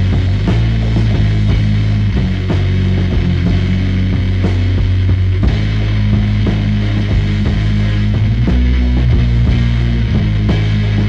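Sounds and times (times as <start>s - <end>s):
bass guitar low notes: 0.0s - 11.0s
drum hits: 0.0s - 11.0s
electric guitar: 0.0s - 11.0s.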